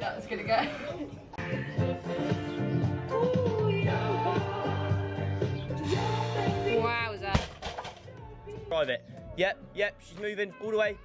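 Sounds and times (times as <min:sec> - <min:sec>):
workout music with steady beat: 0:00.0 - 0:11.0.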